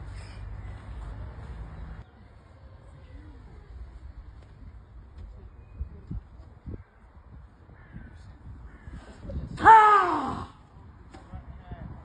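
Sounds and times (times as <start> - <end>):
man shouting: 9.6 - 10.6.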